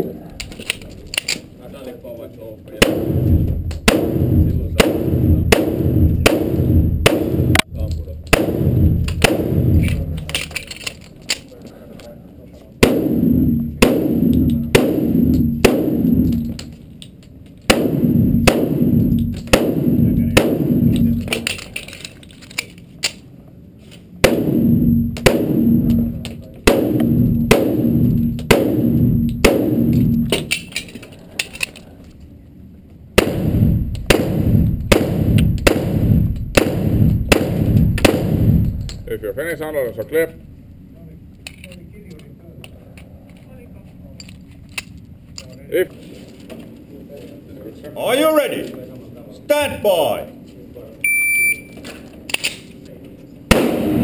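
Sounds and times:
pistol shots echoing indoors: 2.8 - 7.6, 8.2 - 10.6, 12.8 - 16.8, 17.6 - 21.8, 24.2 - 30.8, 33.2 - 39.0, 53.5 - 54.0.

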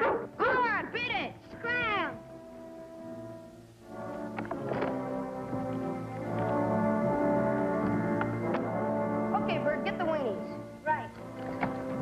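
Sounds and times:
orchestral music with held notes: 1.6 - 12.0.

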